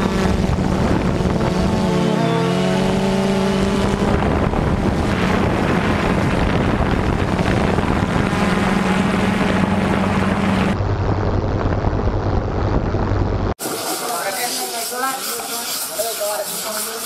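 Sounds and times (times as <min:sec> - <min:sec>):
wind on microphone: 0:00.0 - 0:13.8
drone propeller hum: 0:00.0 - 0:16.0.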